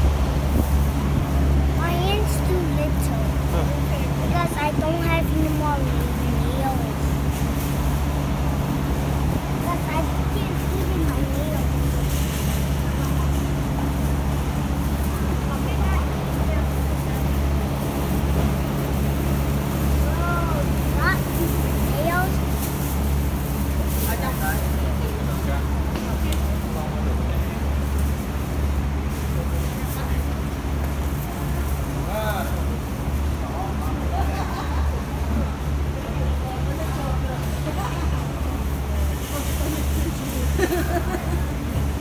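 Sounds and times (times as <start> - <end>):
faint voices: 0.0 - 42.0
low mechanical hum: 0.0 - 42.0.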